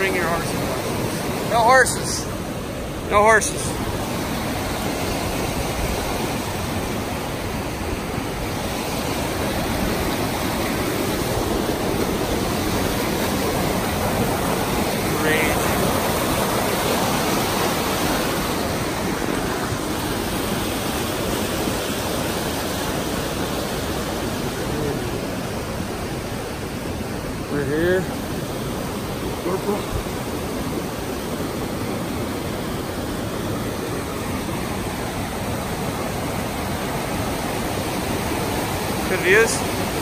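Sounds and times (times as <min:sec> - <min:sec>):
creek rushing over rocks: 0:00.0 - 0:40.0.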